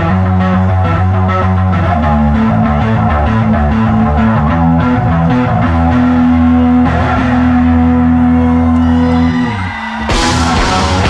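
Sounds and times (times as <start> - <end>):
guitar and bass sustained chord: 0.0 - 9.5, 10.2 - 11.0
rock band playing live: 0.0 - 11.0.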